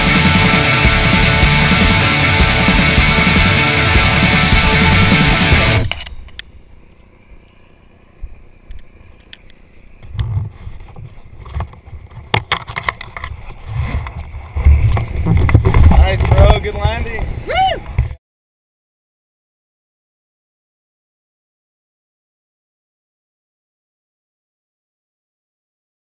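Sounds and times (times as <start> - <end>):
heavy rock music: 0.0 - 6.0
wind buffeting camera microphone: 10.0 - 18.2.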